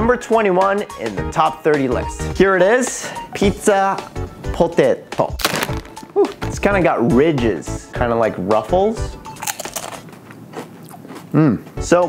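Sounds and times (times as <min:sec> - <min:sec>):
crunching and chewing chips: 0:05.4 - 0:06.1, 0:09.4 - 0:11.5.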